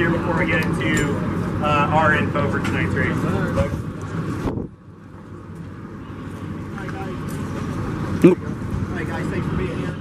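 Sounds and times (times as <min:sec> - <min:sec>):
crowd talking outdoors: 0:00.0 - 0:10.0.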